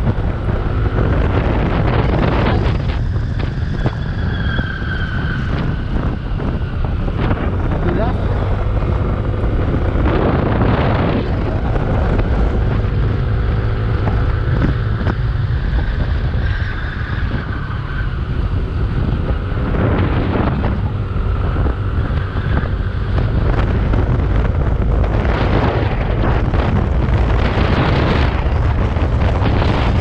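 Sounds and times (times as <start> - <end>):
scooter engine drone: 0.0 - 30.0
wind buffeting microphone: 0.0 - 30.0.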